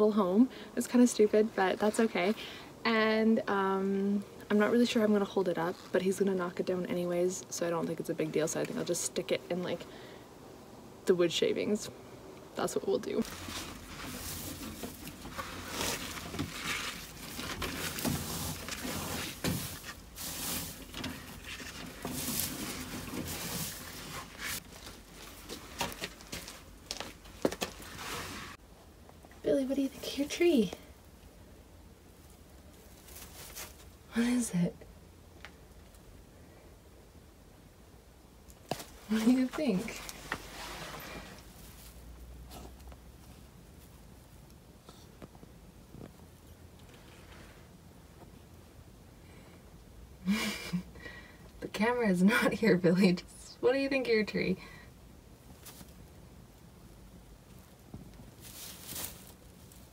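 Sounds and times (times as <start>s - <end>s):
rustling and crunching shavings: 13.0s - 28.6s, 32.1s - 34.4s, 38.7s - 45.1s, 55.4s - 56.6s, 57.3s - 59.9s
branches brushing: 13.1s - 28.6s, 32.1s - 34.3s, 38.6s - 44.0s, 55.5s - 56.2s, 57.4s - 59.9s.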